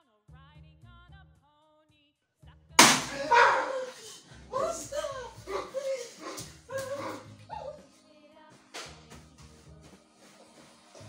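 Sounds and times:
sharp hit: 2.8s - 3.3s
dog barking and yelping: 3.1s - 7.8s
background music with a beat: 7.3s - 11.0s.

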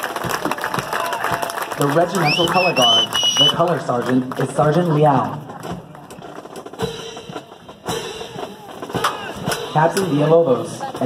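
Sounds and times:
faint spectators talking: 0.0s - 11.0s
military band playing a march: 2.1s - 11.0s
drum beat: 4.4s - 11.0s.

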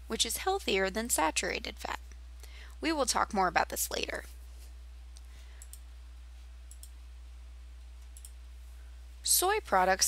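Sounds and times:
faint room noise: 0.0s - 10.0s
steady low hum: 0.0s - 10.0s
faint sharp clicks: 6.7s - 7.0s.

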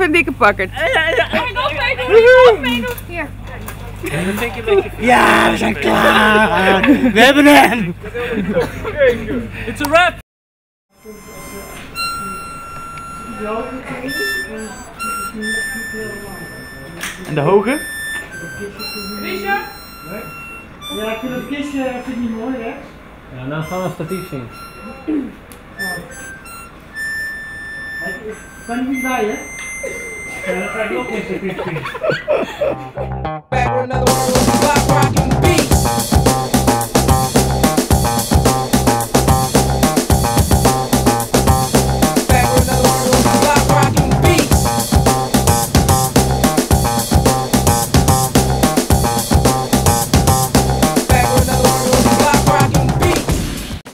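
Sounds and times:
person shouting excitedly: 5.0s - 6.8s
harmonica high notes: 10.9s - 31.6s, 32.6s - 53.2s.

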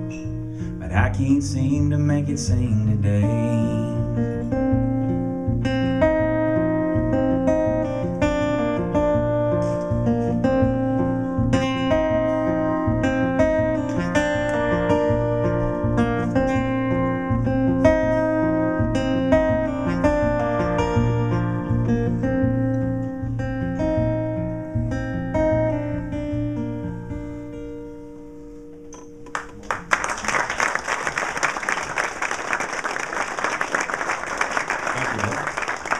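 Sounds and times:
acoustic guitar picking: 0.0s - 29.9s
audience applause: 29.3s - 35.9s.

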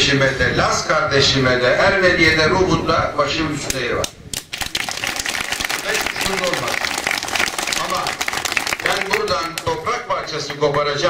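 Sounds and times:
audience clapping: 4.3s - 11.0s.

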